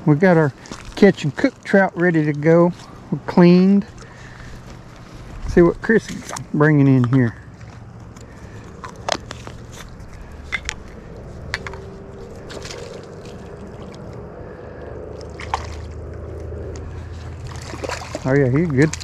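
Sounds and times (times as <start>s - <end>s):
low steady rumble: 0.0s - 19.0s.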